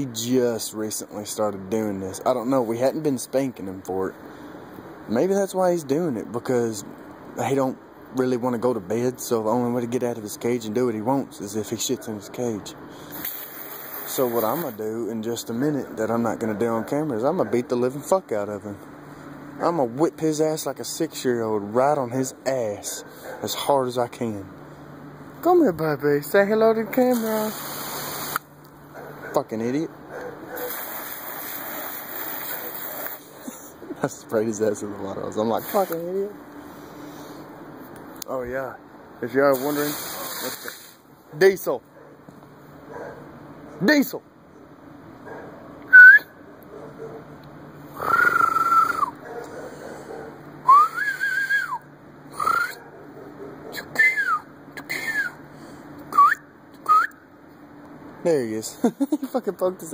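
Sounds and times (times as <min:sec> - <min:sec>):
garden hose spraying water: 0:13.1 - 0:15.0, 0:26.9 - 0:28.5, 0:30.5 - 0:33.5, 0:35.3 - 0:36.4, 0:39.3 - 0:41.0
man whistling: 0:45.9 - 0:46.4, 0:48.0 - 0:49.2, 0:50.6 - 0:52.8, 0:54.0 - 0:55.4, 0:56.1 - 0:57.2.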